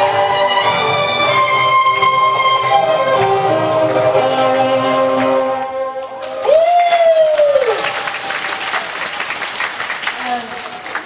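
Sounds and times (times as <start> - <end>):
violin with backing track: 0.0 - 6.1
audience applause: 2.1 - 11.0.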